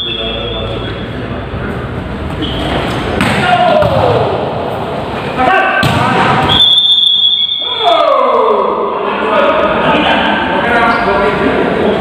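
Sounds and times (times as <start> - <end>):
players' voices echoing in gym: 0.0 - 12.0.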